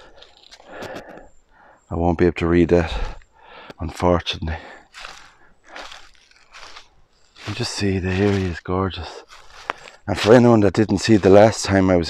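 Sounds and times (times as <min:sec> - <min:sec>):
footsteps crunching through dry leaves: 0:04.8 - 0:12.0.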